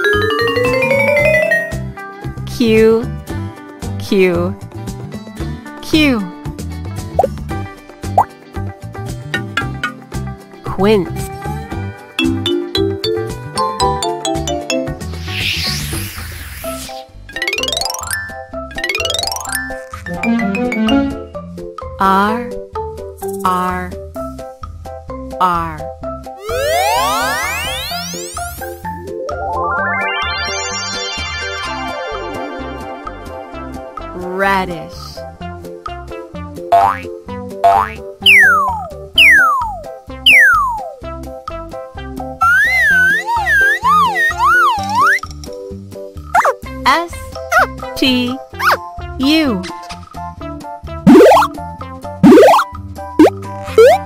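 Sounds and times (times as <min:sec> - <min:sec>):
upbeat children's music: 0:00.0 - 0:15.7, 0:17.3 - 0:24.4, 0:25.3 - 0:54.0
rising cartoon sweep: 0:14.7 - 0:18.1, 0:26.4 - 0:34.0, 0:51.1 - 0:51.5, 0:52.2 - 0:52.6
cartoon upward pops: 0:15.1 - 0:17.0, 0:26.4 - 0:28.7, 0:36.7 - 0:40.9, 0:42.4 - 0:45.2, 0:46.4 - 0:46.6, 0:51.0 - 0:51.6, 0:52.2 - 0:54.0.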